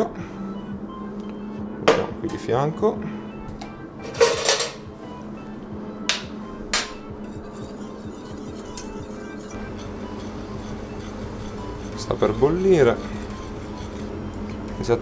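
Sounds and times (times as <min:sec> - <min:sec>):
background music: 0:00.0 - 0:15.0
pans and utensils clattering: 0:04.0 - 0:04.9.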